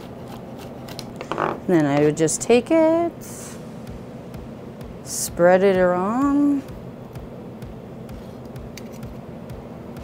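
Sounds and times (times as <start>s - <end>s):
low kitchen hum: 0.0s - 10.0s.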